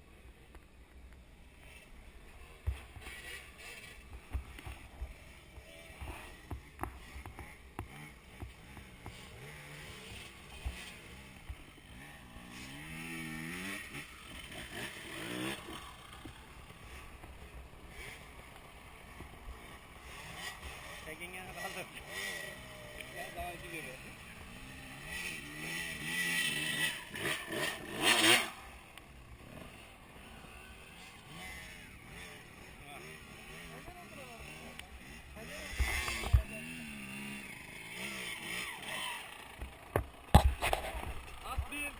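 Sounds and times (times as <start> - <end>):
dirt bike engine revving: 1.4 - 41.9.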